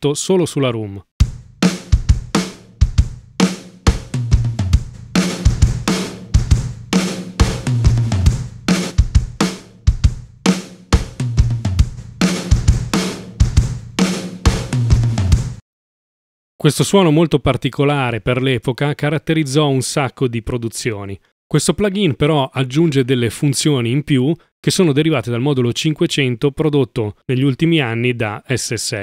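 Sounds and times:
drum kit playing a beat: 1.2s - 15.6s.

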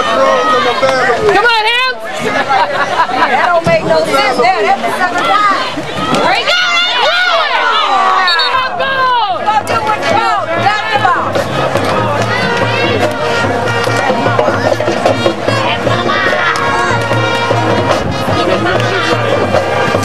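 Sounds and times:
crowd yelling and cheering: 0.0s - 20.0s
music with low beat: 9.6s - 20.0s.

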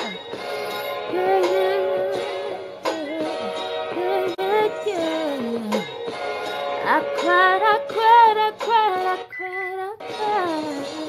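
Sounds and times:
woman singing wordless notes: 1.1s - 6.0s, 6.8s - 11.0s.

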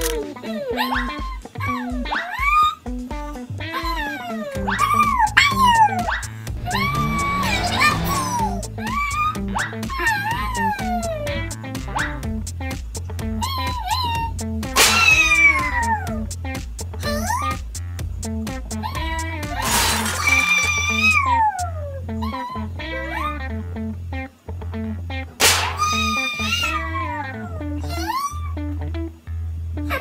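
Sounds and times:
squeaky yelps and whines: 0.0s - 3.0s, 3.6s - 12.3s, 13.3s - 16.3s, 17.0s - 17.6s, 18.7s - 23.6s, 25.5s - 28.8s, 29.8s - 30.0s
cartoon music with bass beat: 0.0s - 30.0s
noisy crash sound effects: 6.6s - 8.6s, 19.6s - 20.5s, 25.4s - 26.0s.

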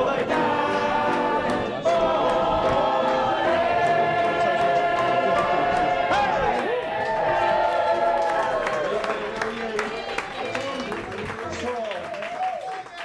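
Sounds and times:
voices singing in chorus: 0.0s - 7.6s.

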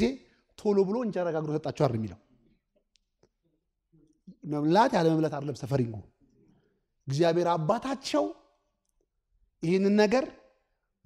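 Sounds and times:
man speaking: 0.0s - 2.2s, 4.2s - 6.1s, 7.0s - 8.5s.

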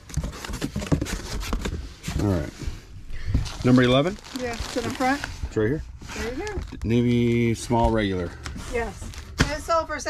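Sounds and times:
plastic bags rustling and crinkling: 3.2s - 10.0s.

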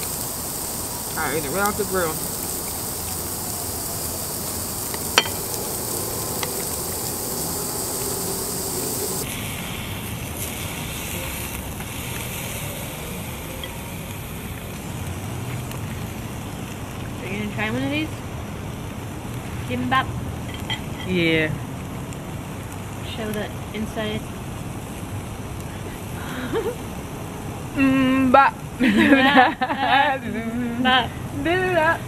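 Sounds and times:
meat sizzling on grill: 0.0s - 25.6s.

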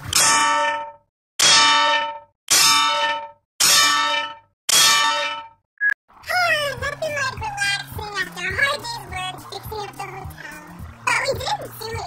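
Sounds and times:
loud metallic clang: 0.0s - 5.6s.

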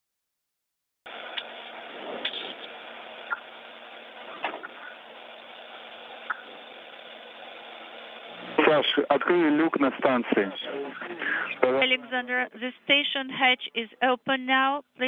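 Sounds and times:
ventilation hiss and hum: 1.1s - 15.0s.

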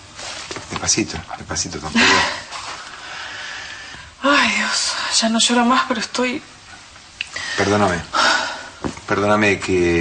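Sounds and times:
woman sobbing: 1.9s - 2.5s
breathy exhale: 3.0s - 4.2s.

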